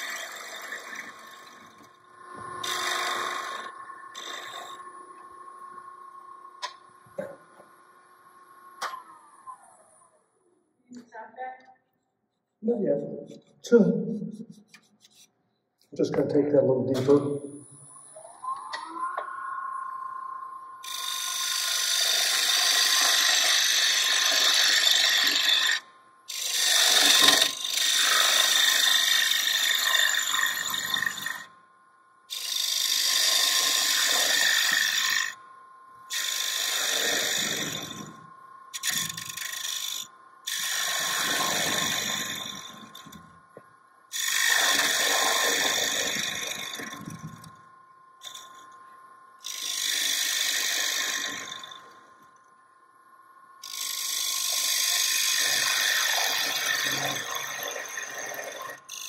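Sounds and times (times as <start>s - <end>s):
gouge cutting spinning wood: 0.0s - 4.9s, 20.8s - 31.5s, 32.3s - 35.4s, 36.1s - 43.3s, 44.1s - 47.3s, 48.2s - 48.6s, 49.4s - 51.9s, 53.6s - 59.0s
faint steady lathe whine: 0.0s - 10.4s, 17.0s - 59.0s.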